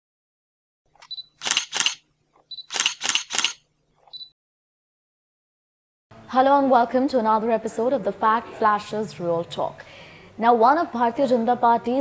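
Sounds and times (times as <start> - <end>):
camera shutter clicks: 1.0 - 2.0, 2.6 - 3.6
short high beep: 2.5 - 2.9.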